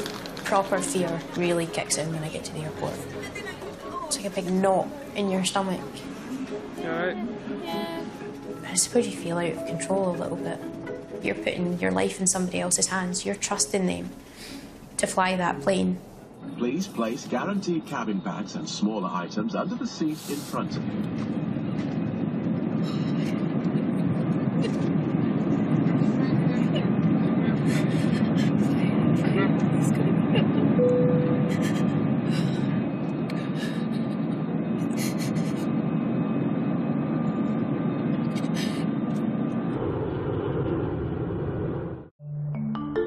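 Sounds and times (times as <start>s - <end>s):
airliner cabin engine drone: 0.0s - 42.1s
short tone: 30.8s - 31.5s.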